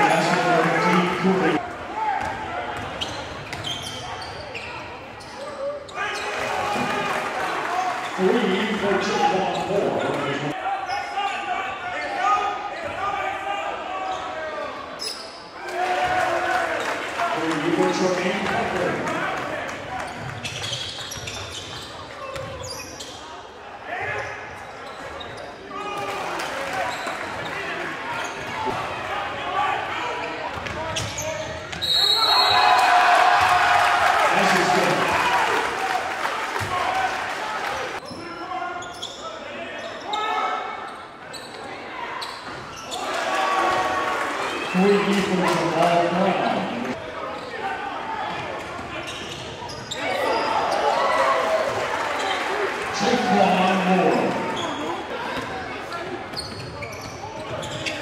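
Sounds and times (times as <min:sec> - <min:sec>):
crowd voices echoing in gym: 0:00.0 - 0:58.0.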